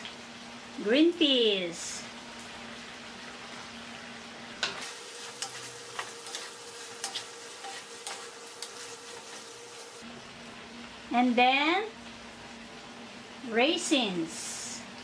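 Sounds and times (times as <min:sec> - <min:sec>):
meat sizzling in a wok: 0:00.0 - 0:15.0
wooden spatula scraping a pan: 0:04.8 - 0:10.0.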